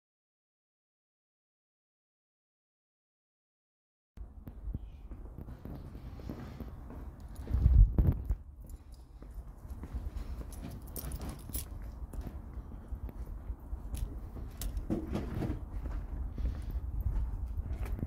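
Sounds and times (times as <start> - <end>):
footsteps on brick paving: 4.4 - 18.0.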